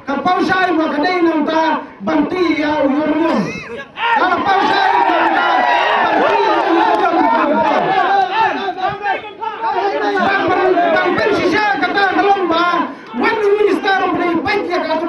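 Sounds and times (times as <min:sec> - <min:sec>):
crowd voices talking over each other: 0:00.0 - 0:15.0
man speaking over public address: 0:00.0 - 0:15.0.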